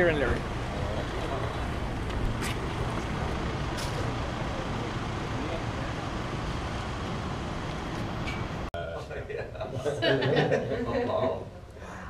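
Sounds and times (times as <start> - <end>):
street traffic rumble: 0.0 - 10.8.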